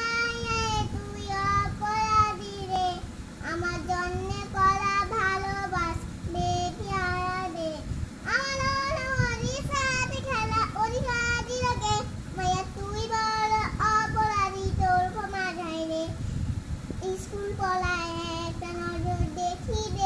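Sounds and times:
girl singing unaccompanied: 0.0 - 20.0.

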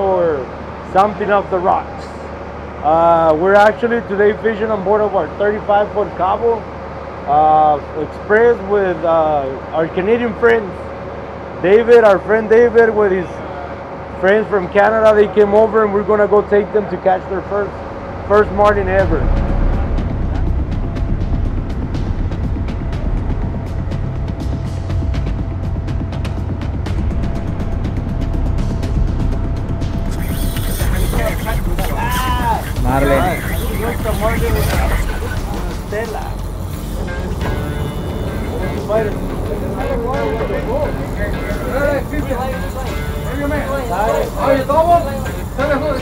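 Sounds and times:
boat engines rumbling: 0.0 - 46.0
voices: 11.6 - 20.5, 30.0 - 46.0
music: 17.8 - 46.0.

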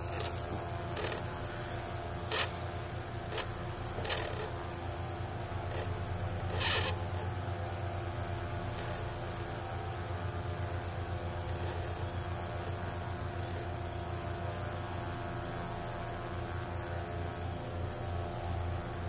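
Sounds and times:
insects chorus: 0.0 - 19.0.

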